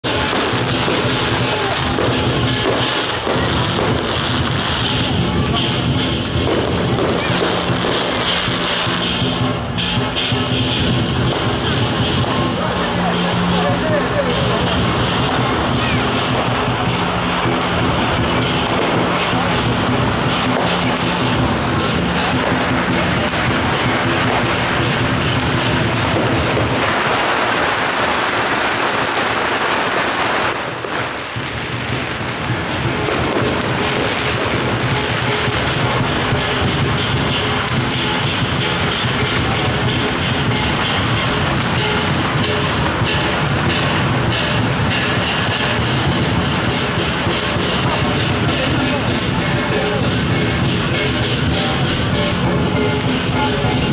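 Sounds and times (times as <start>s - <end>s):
cymbals crashing: 0.0s - 53.9s
drums beating fast rhythm: 0.0s - 53.9s.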